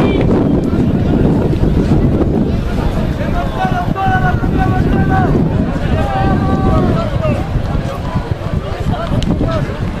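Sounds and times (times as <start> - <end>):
distant voices: 0.0 - 10.0
wind buffeting microphone: 0.0 - 10.0.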